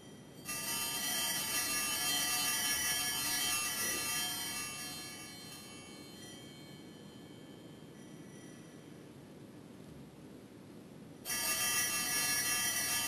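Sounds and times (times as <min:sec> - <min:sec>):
altar bells ringing: 0:00.0 - 0:09.0, 0:11.3 - 0:13.0.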